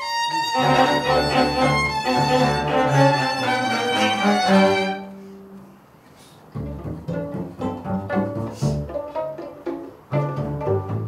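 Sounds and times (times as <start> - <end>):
plucked pizzicato strings: 0.0 - 5.6, 6.6 - 11.0
string ensemble held chord: 0.2 - 5.5.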